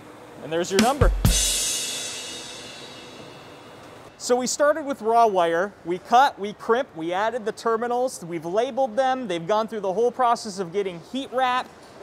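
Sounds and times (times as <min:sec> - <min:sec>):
background music: 0:00.8 - 0:03.4
crash cymbal ringing: 0:00.8 - 0:04.1.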